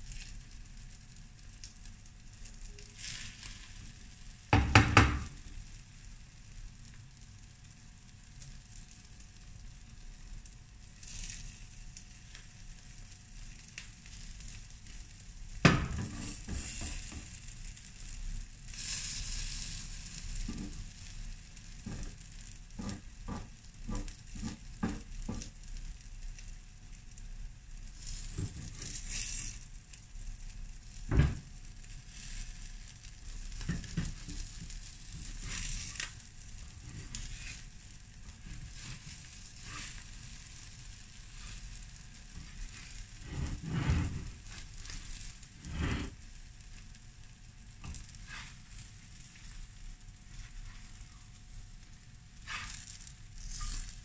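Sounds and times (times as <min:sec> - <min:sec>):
batter sizzling on griddle: 0:00.0 - 0:54.0
spatula knocking and scraping pan: 0:04.6 - 0:05.4, 0:15.6 - 0:17.4, 0:20.4 - 0:20.8, 0:21.8 - 0:22.2, 0:22.8 - 0:25.5, 0:28.2 - 0:29.4, 0:33.6 - 0:36.0, 0:42.4 - 0:45.0.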